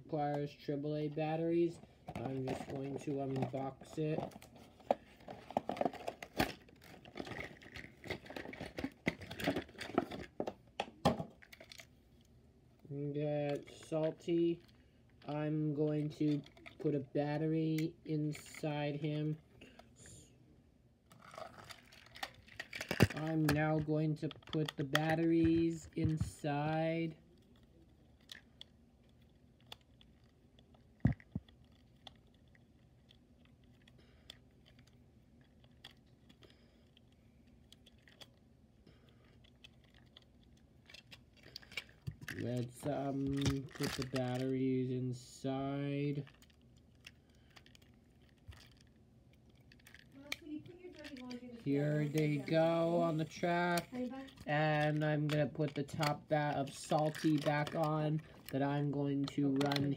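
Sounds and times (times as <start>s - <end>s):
faint plastic clicks and rubs: 21.1s - 44.5s, 46.2s - 59.9s
toy train clicks and taps: 49.7s - 58.6s.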